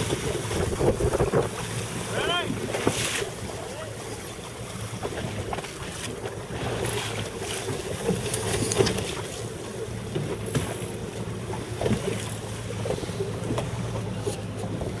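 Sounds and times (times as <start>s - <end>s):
wind on microphone: 0.0s - 1.7s
water knocking against hull: 0.0s - 3.5s, 4.1s - 15.0s
outboard motor humming: 0.0s - 15.0s.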